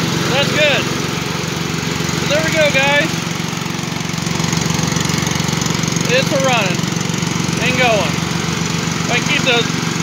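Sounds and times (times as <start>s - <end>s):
lawn mower engine running: 0.0s - 10.0s.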